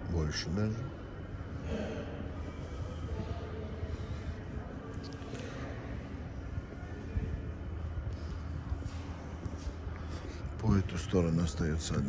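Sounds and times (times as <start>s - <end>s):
faint steady tones: 0.0s - 12.0s
low rumble of metro platform: 0.0s - 12.0s.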